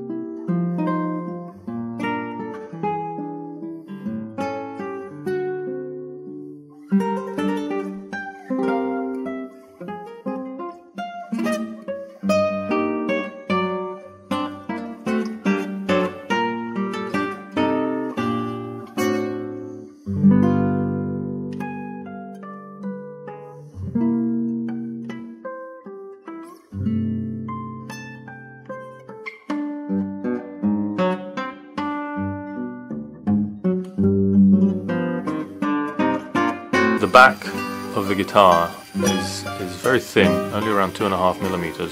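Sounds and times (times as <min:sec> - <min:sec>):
solo acoustic guitar: 0:00.0 - 0:41.9.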